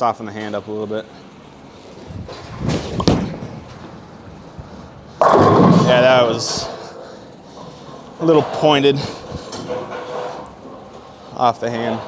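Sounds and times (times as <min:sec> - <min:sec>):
bowling ball rolling: 0:02.0 - 0:04.3, 0:05.2 - 0:11.1
bowling ball thudding on lane: 0:02.8 - 0:03.5, 0:05.2 - 0:06.3.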